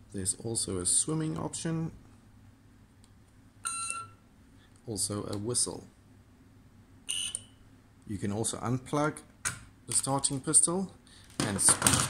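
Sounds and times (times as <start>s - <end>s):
high electronic beep: 7.1s - 7.6s.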